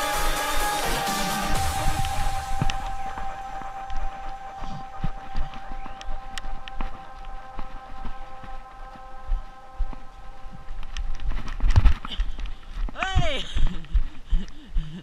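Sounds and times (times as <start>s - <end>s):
electronic background music: 0.0s - 12.8s
steady high whine: 0.0s - 12.9s
footsteps on artificial turf: 1.6s - 14.3s.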